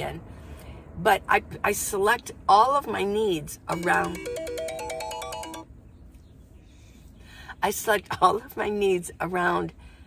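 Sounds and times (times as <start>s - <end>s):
electronic ringtone beeping: 3.7s - 5.7s.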